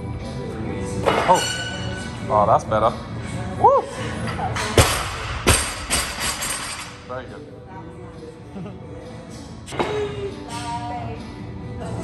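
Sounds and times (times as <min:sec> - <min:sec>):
gym music: 0:00.0 - 0:12.0.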